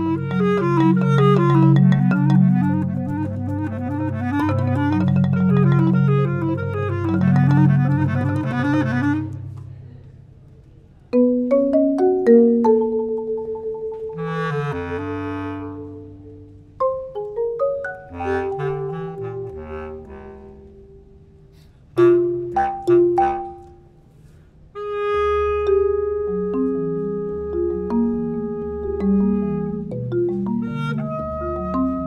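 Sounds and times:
marimba notes: 0.0 - 9.8, 11.1 - 21.4, 22.0 - 24.0, 24.8 - 32.0
bass clarinet tones: 0.0 - 9.9, 13.3 - 16.8, 17.9 - 24.0, 24.7 - 32.0.

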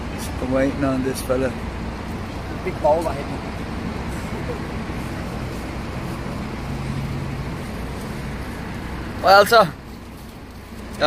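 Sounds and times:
road traffic noise: 0.0 - 11.0
vehicle engine idling: 0.0 - 11.0.

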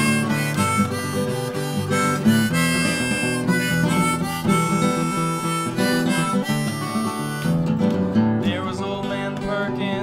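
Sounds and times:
harmonica playing: 0.0 - 8.2
acoustic guitar strumming: 0.0 - 10.0.

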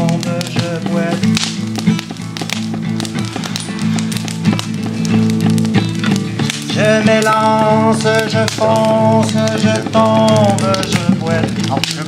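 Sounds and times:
man singing: 0.0 - 1.6, 6.6 - 12.0
acoustic guitar strumming: 0.0 - 12.0
sharp percussive taps: 0.0 - 12.0.

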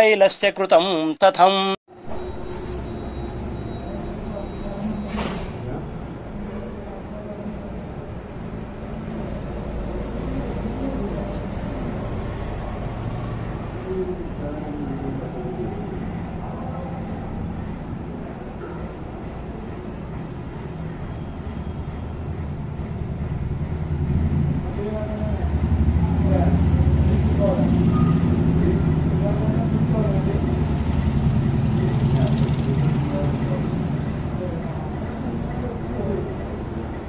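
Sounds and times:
vehicle engine rumble: 2.0 - 37.0
faint voices: 3.5 - 21.1, 24.6 - 37.0.

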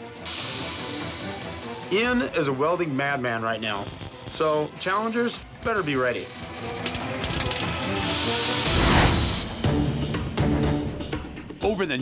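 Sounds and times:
background music: 0.0 - 12.0
angle grinder cutting metal: 0.2 - 2.2, 3.4 - 9.4
welding crackle: 3.6 - 9.4.

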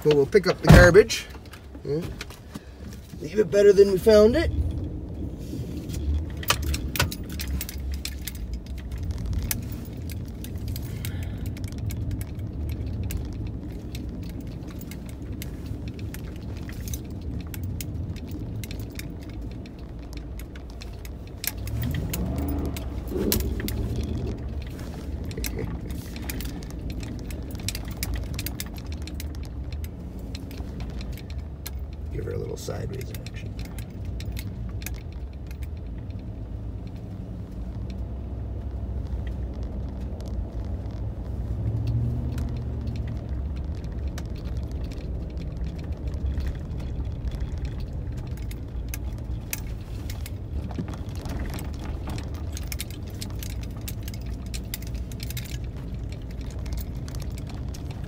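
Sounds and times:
engine and road rumble: 0.0 - 58.0
small clicks and rattles: 0.0 - 58.0.

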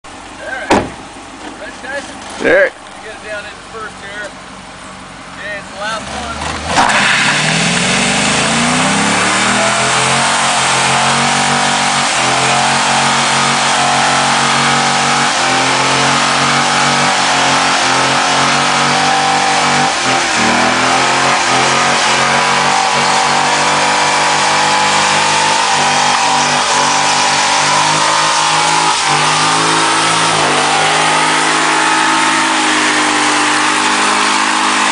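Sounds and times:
car engine idling: 0.0 - 34.9
car door slamming: 0.6 - 1.1.

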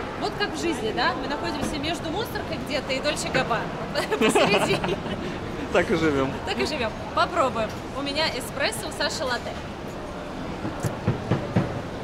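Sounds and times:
shopping mall hubbub: 0.0 - 12.0.

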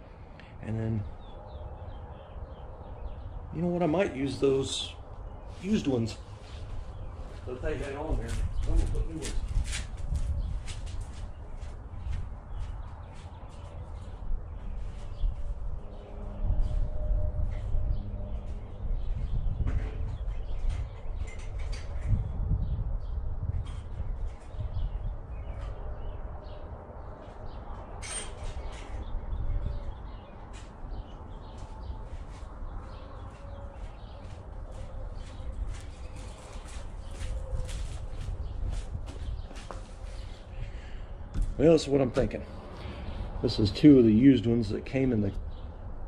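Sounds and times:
small birds chirping: 0.0 - 16.9, 17.5 - 45.9
wind rumble on microphone: 0.0 - 46.0.

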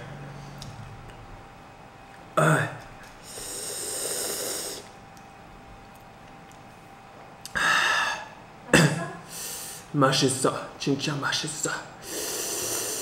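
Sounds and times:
man breathing hard through mouth: 3.2 - 4.9, 7.5 - 8.3, 12.0 - 13.0.

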